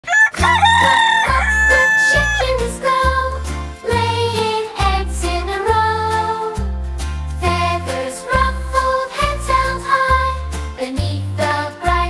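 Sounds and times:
rooster crowing: 0:00.0 - 0:02.6
children's song music: 0:00.1 - 0:12.0.

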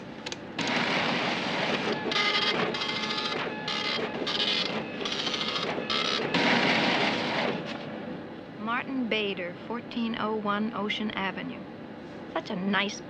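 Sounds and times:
printer printing: 0:00.0 - 0:08.0.

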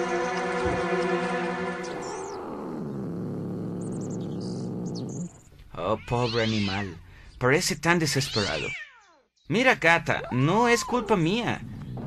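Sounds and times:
held synthesizer chord: 0:00.0 - 0:02.2
enraged cat growl: 0:02.0 - 0:05.4.

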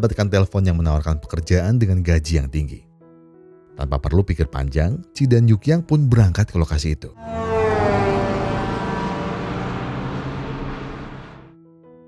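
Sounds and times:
bus driving past: 0:07.2 - 0:11.5.

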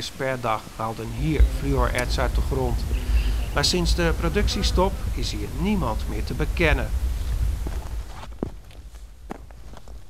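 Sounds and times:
low steady rumble: 0:01.0 - 0:09.4.

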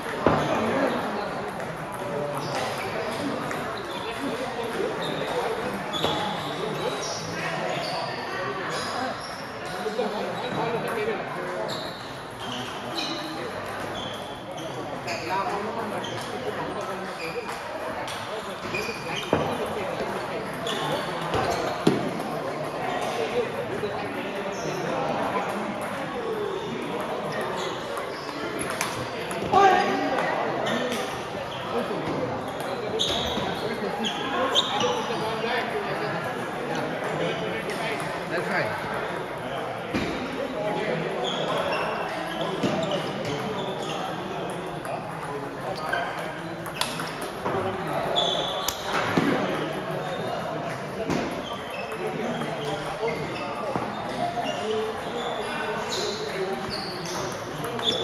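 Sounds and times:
chatter of voices: 0:00.0 - 0:58.0
murmur of people talking: 0:00.0 - 0:58.0
table tennis balls clicking: 0:44.5 - 0:47.7.

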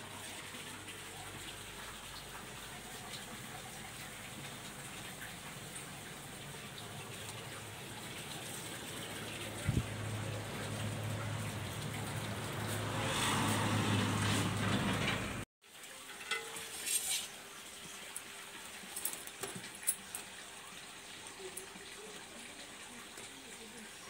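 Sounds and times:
oil sizzling while deep-frying: 0:00.0 - 0:24.0.

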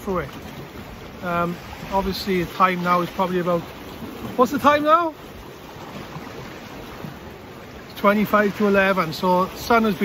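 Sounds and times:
sea water washing against rocks: 0:00.0 - 0:10.0.

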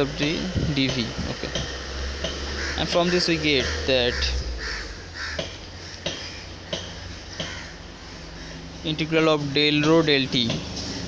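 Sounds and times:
steady low hum: 0:00.0 - 0:10.5
crow cawing: 0:02.3 - 0:08.9.

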